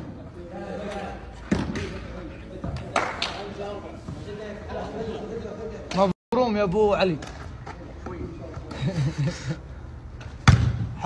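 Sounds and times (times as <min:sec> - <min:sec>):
players' voices: 0:00.0 - 0:11.0
volleyball being hit: 0:10.4 - 0:11.0.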